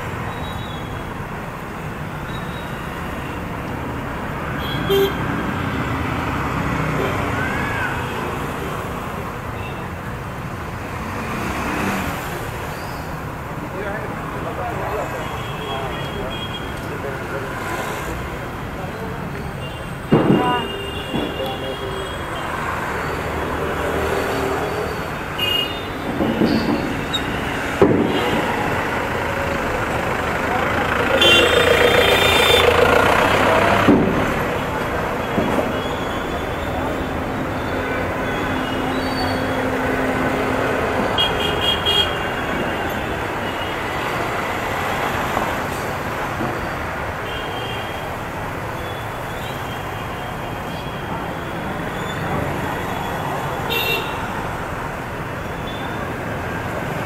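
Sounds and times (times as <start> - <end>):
rumble of passing cars and motorbikes: 0.0 - 47.4
vehicle horns honking: 4.6 - 5.7, 24.6 - 27.4, 31.1 - 33.1, 41.1 - 44.0, 53.6 - 54.3
people talking: 13.6 - 22.4, 28.1 - 33.9.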